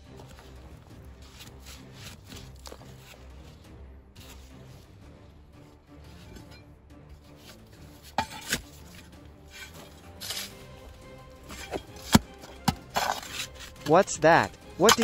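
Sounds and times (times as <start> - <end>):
hand shovel scraping stony soil: 0.0 - 6.6, 7.2 - 15.0
quiet background music: 0.0 - 15.0.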